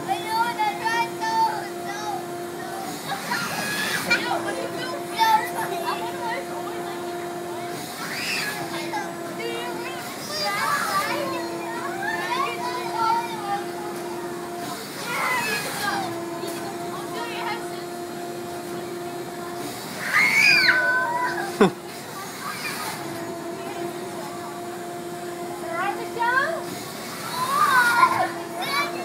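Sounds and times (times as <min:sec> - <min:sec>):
children talking and calling out: 0:00.0 - 0:29.0
steady hum: 0:00.0 - 0:29.0
riders squealing: 0:20.0 - 0:21.6.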